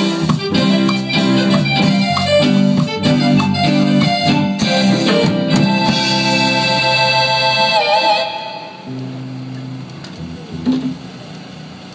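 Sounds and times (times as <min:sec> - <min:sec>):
electronic keyboard chord: 0:00.0 - 0:09.9
low held note: 0:04.8 - 0:10.9.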